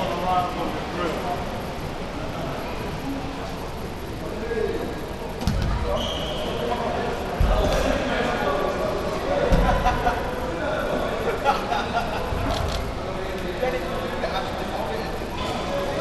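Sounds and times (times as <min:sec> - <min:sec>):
chatter of voices: 0:00.0 - 0:16.0.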